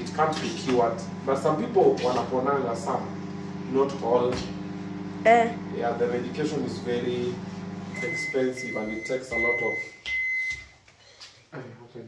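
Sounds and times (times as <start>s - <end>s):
person speaking: 0.0s - 4.3s
microwave oven beeping: 0.0s - 10.8s.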